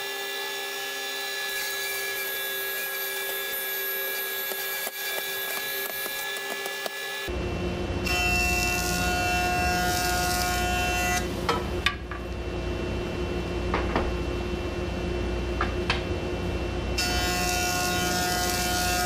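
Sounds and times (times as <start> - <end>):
jointer cutting a board: 0.0 - 7.3, 8.0 - 11.3, 17.0 - 19.0
thickness planer running: 0.0 - 11.8.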